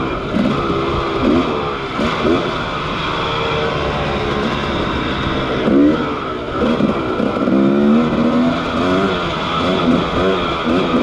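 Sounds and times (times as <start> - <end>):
dirt bike engine revving: 0.0 - 11.0.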